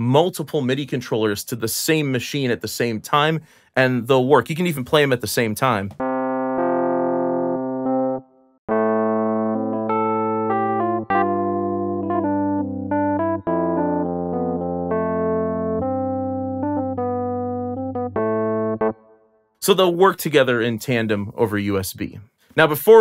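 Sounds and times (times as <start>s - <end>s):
electric piano chords: 6.0s - 19.2s.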